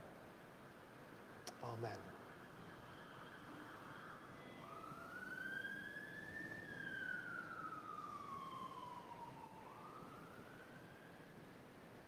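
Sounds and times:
emergency siren wailing: 0:02.1 - 0:11.6.

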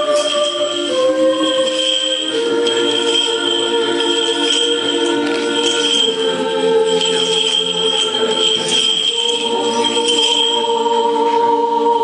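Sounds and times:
choir singing unaccompanied: 0:00.0 - 0:12.0.

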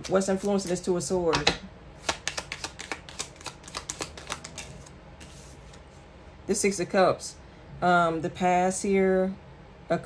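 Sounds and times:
cards being shuffled: 0:00.0 - 0:05.9.

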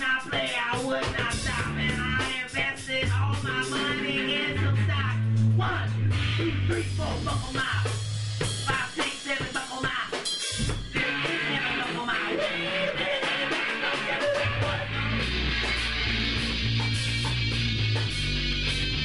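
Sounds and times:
guitar: 0:00.0 - 0:19.0
drum kit hits: 0:01.0 - 0:11.2, 0:13.2 - 0:19.0
heavy bass line: 0:01.1 - 0:08.8, 0:10.9 - 0:19.0.

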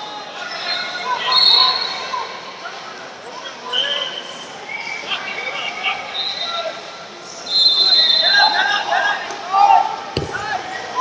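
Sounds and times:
people shouting in a hall: 0:00.0 - 0:11.0.

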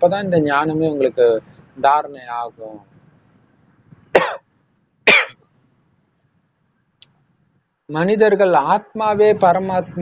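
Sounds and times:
man coughing: 0:04.2 - 0:04.4, 0:05.1 - 0:05.4.

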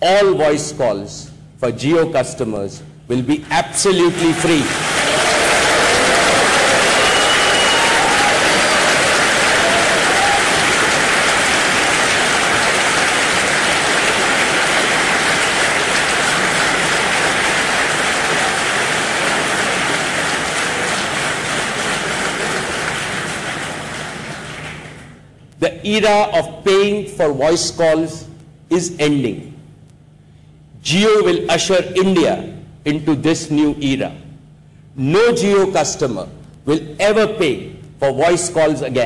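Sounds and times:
audience applauding: 0:04.1 - 0:25.2.

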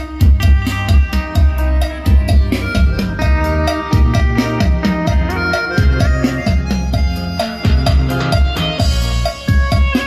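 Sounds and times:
music with deep bass drum beat: 0:00.0 - 0:10.0.

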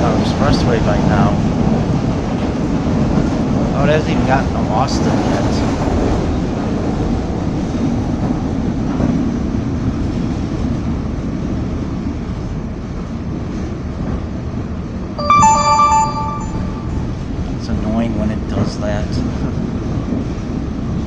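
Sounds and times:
train car rumbling on rails: 0:00.0 - 0:14.6
two-note tone: 0:15.2 - 0:17.2.

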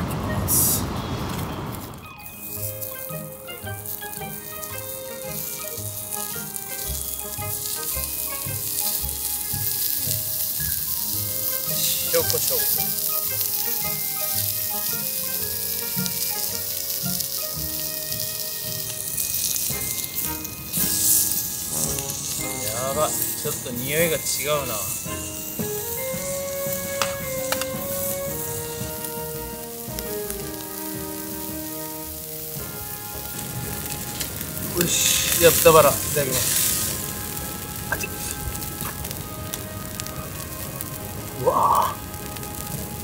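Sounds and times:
pork sizzling on griddle: 0:00.5 - 0:00.8, 0:01.7 - 0:43.0
background music with beat: 0:02.0 - 0:43.0.

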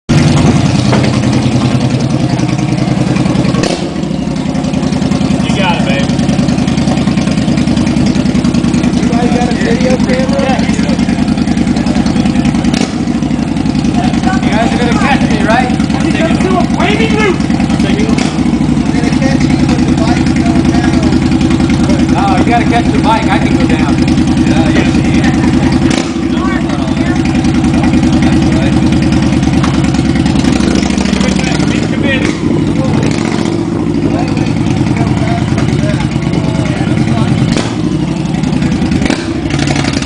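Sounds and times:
motorcycle engine idling: 0:00.1 - 0:40.0.

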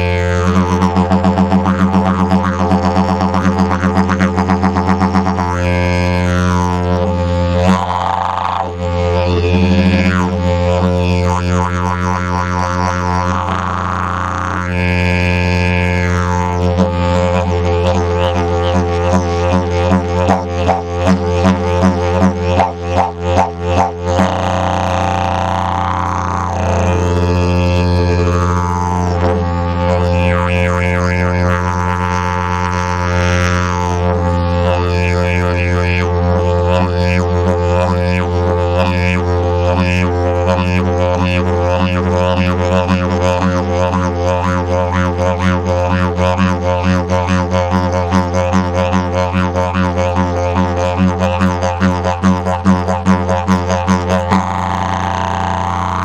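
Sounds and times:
didgeridoo drone: 0:00.0 - 0:56.0.

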